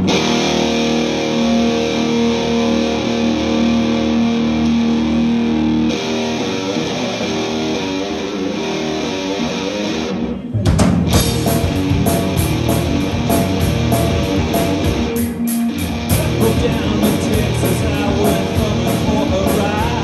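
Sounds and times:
bass guitar: 0.0s - 20.0s
drums: 0.0s - 20.0s
electric guitars ringing: 0.0s - 20.0s.

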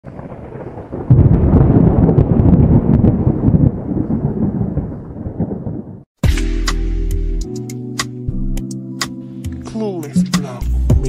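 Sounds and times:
thunder rumble with crackles: 0.0s - 6.1s.

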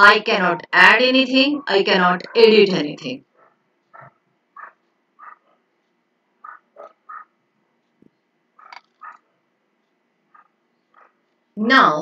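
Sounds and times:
faint short animal calls: 6.4s - 7.3s.

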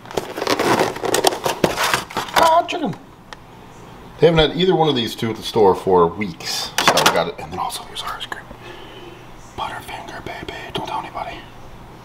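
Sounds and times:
plastic container crackling open: 0.0s - 3.0s.

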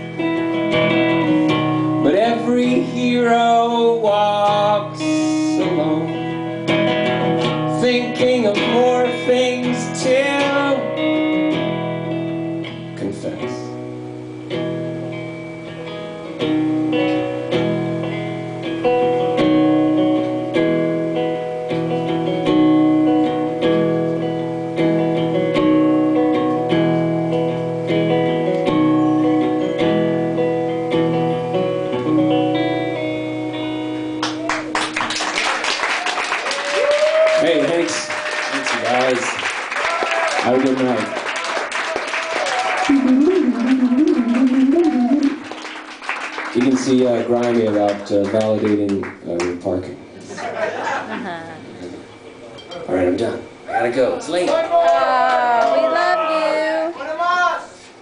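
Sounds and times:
acoustic guitar strumming: 0.0s - 35.2s, 42.8s - 50.2s
man singing: 2.0s - 6.3s, 7.7s - 11.0s.

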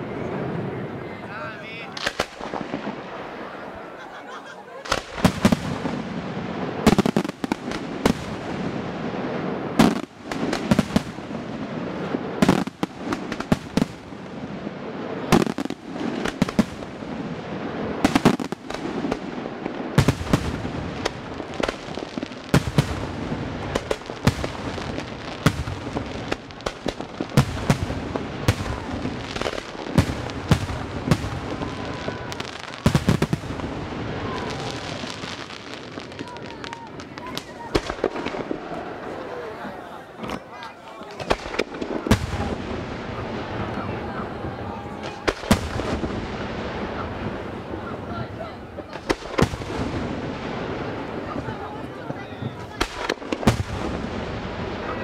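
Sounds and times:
small firework pops and crackle: 2.0s - 3.1s, 4.8s - 6.0s, 6.8s - 8.6s, 9.8s - 11.3s, 15.1s - 17.0s, 18.0s - 39.3s, 40.2s - 43.9s, 45.0s - 47.5s, 48.8s - 55.0s.

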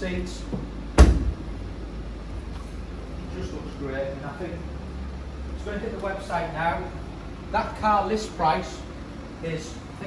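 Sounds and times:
low steady hum: 0.0s - 10.0s
car boot lid thump: 1.0s - 1.5s.

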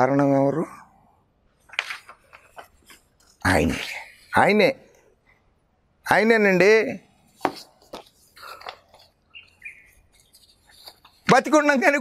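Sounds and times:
paper rustling: 1.6s - 4.3s, 7.3s - 12.0s
sharp taps on paper: 7.4s - 9.1s
faint bird chirps: 8.5s - 10.8s.

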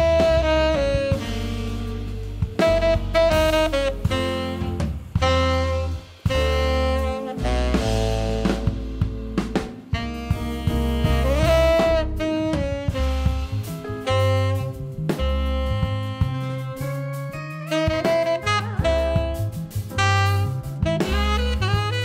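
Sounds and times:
drum kit: 0.0s - 22.0s
electric bass: 0.0s - 22.0s
keyboards: 0.0s - 22.0s
tenor saxophone melody: 0.0s - 22.0s.

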